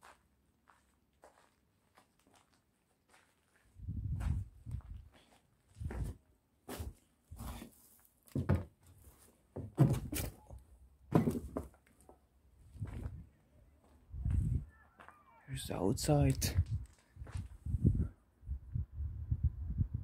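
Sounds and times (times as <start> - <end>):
footsteps on debris-strewn floor: 0.0 - 10.4, 11.1 - 13.2, 16.3 - 17.6.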